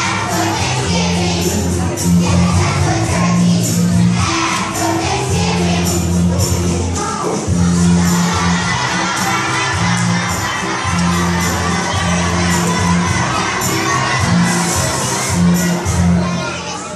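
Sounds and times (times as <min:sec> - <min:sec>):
backing music with bass: 0:00.0 - 0:16.3
children singing and shouting: 0:00.0 - 0:16.9.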